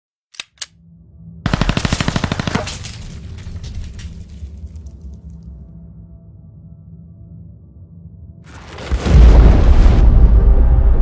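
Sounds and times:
machine-gun fire burst: 0:01.5 - 0:02.8.

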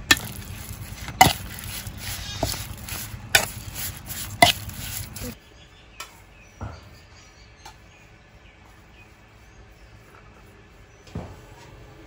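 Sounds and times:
spoon mixing meat in metal bowl: 0:00.0 - 0:05.4.

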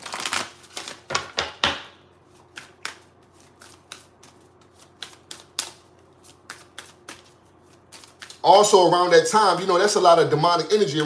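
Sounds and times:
cards being shuffled: 0:00.0 - 0:01.5, 0:02.3 - 0:08.4.

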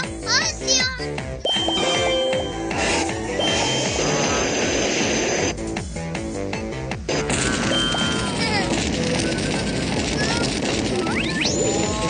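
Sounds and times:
background music: 0:00.0 - 0:10.3
burst of noise: 0:02.7 - 0:05.6, 0:07.1 - 0:12.0.

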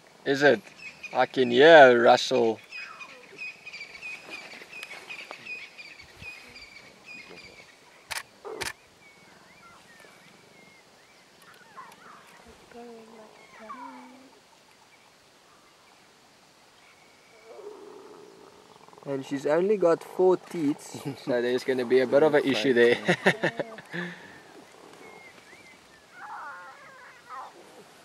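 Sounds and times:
small birds chirping: 0:00.0 - 0:28.0
sharp clicks: 0:08.1 - 0:08.8
lion cubs growling and squealing: 0:11.4 - 0:14.4, 0:20.4 - 0:28.0.

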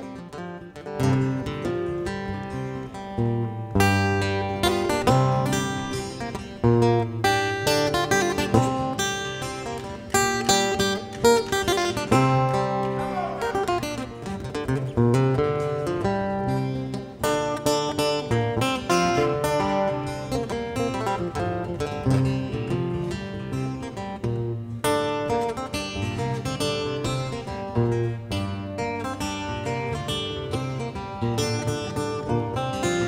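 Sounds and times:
two acoustic guitars playing: 0:00.0 - 0:33.0.

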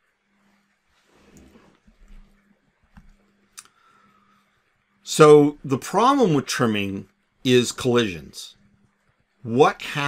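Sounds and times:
faint soft sound: 0:00.0 - 0:05.0
faint steady hum: 0:00.0 - 0:10.0.

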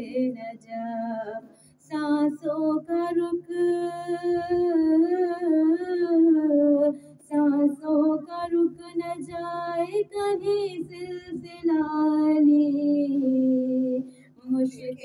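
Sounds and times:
woman singing a devotional chant: 0:00.0 - 0:15.0.

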